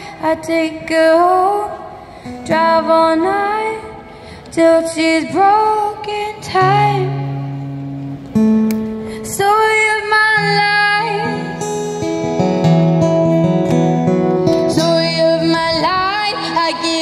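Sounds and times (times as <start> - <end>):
woman singing: 0.0 - 7.4, 9.2 - 11.6, 14.7 - 17.0
acoustic guitar playing: 2.2 - 4.0, 5.2 - 17.0.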